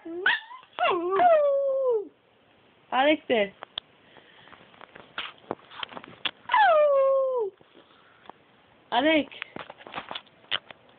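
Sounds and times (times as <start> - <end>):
small dog howling: 0.0 - 2.1, 6.5 - 7.6.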